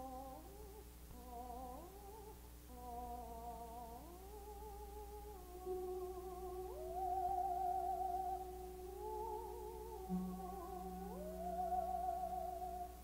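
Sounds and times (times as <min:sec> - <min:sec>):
quiet orchestral music: 0:05.4 - 0:13.0.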